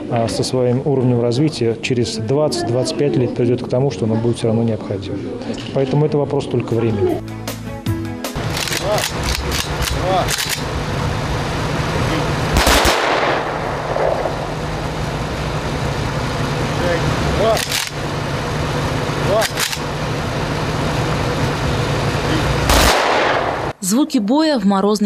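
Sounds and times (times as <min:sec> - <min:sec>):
steady low rumble: 0:08.4 - 0:23.8
single heavy gunshots: 0:12.5 - 0:14.5, 0:22.6 - 0:23.8
burst of gunfire: 0:12.5 - 0:14.9, 0:22.6 - 0:23.8.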